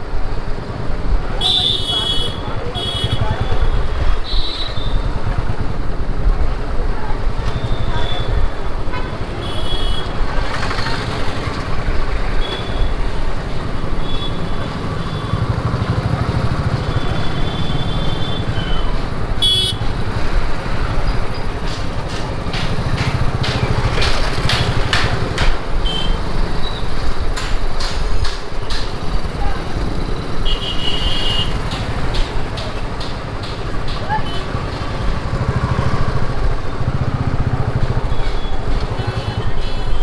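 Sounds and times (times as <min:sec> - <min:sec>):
street traffic: 0:00.0 - 0:40.0
vehicle horn toots: 0:19.4 - 0:19.8, 0:30.4 - 0:31.6
motorcycle engine running: 0:31.4 - 0:39.4.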